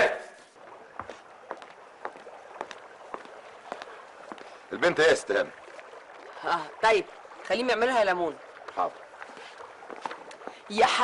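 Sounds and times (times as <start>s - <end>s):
faint outdoor hiss: 0.0s - 11.0s
footsteps on stone paving: 0.5s - 6.4s, 8.4s - 11.0s.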